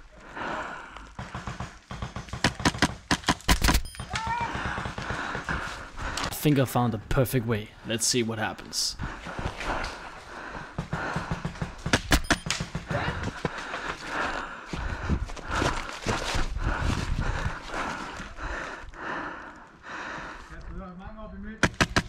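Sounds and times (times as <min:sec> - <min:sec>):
heavy breathing: 0:00.0 - 0:01.7, 0:04.4 - 0:06.4, 0:08.9 - 0:11.9, 0:12.7 - 0:20.6
running footsteps on grass: 0:12.6 - 0:20.8
airsoft rifle shots: 0:21.6 - 0:22.0.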